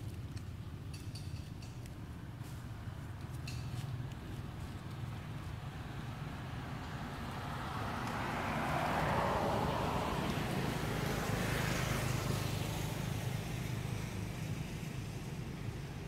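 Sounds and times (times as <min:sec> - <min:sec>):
vehicle driving past: 0:06.4 - 0:15.2.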